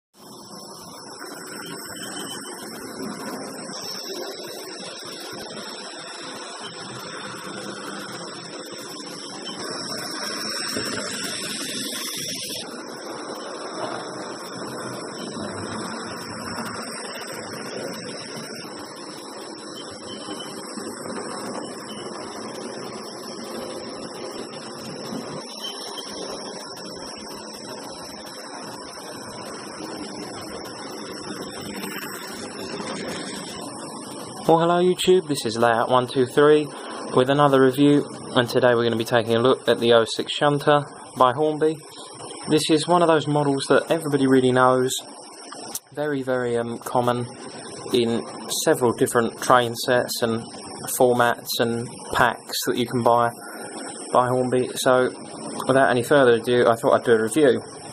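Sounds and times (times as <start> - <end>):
small electric motors whirring: 1.2 - 13.4, 14.0 - 34.3.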